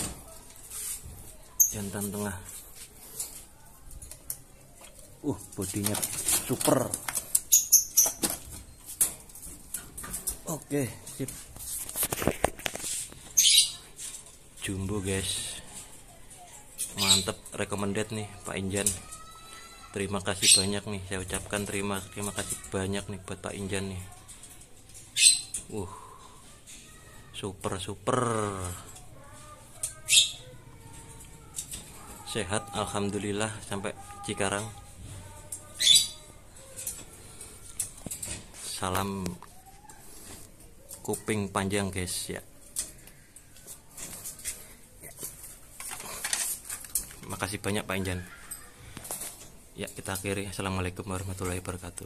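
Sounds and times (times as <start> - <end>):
birds calling faintly: 13.0 - 50.0
wire-mesh cage rattling and clicks: 45.2 - 50.3.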